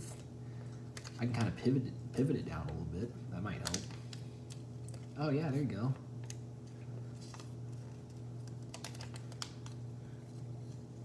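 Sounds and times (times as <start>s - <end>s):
steady low hum: 0.0s - 11.0s
paper crinkling and clicking: 0.1s - 1.6s, 3.5s - 5.2s, 6.2s - 10.9s.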